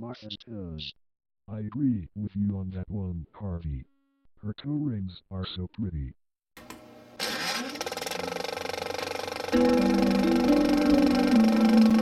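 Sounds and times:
engine rapid rattling pulse: 7.2 - 12.0.

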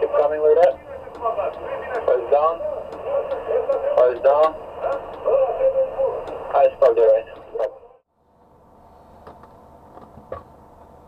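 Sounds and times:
man speaking over two-way radio: 0.0 - 8.0
faint background hum: 0.0 - 11.0.

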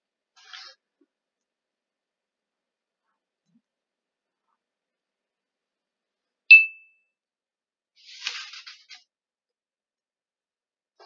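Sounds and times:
computer notification ding: 6.5 - 6.9.

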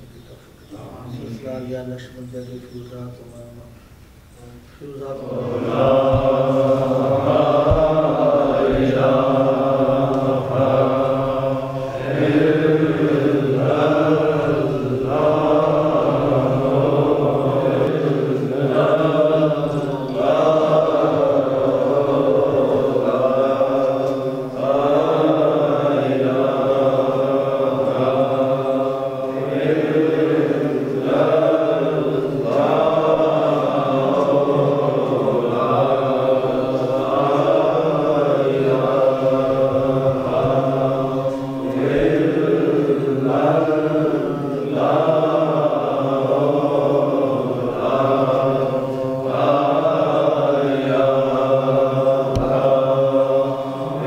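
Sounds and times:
men chanting in unison: 0.0 - 3.5, 4.5 - 54.0.

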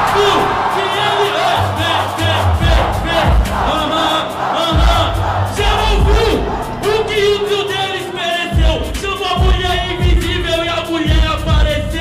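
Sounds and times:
crowd yelling: 0.0 - 9.8
hip-hop beat with heavy bass: 0.0 - 12.0
person rapping into microphone: 0.0 - 12.0.

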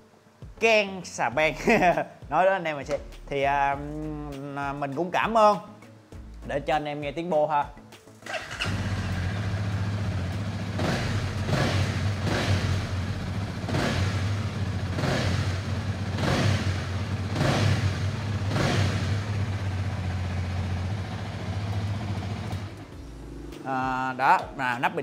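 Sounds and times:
motorcycle engine starting and idling: 8.2 - 24.1
throttle blips through exhaust: 8.6 - 24.0.

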